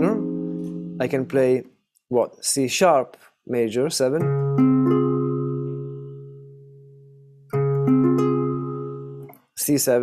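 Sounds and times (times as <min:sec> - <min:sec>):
acoustic guitar chords ringing: 0:00.0 - 0:01.4.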